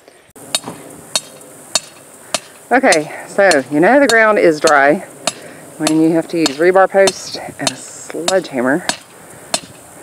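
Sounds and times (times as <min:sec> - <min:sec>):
sledgehammer striking steel post: 0:00.5 - 0:09.8.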